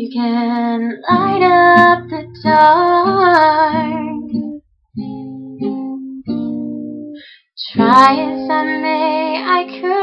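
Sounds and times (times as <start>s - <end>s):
acoustic guitar chords strummed: 1.1s - 7.0s.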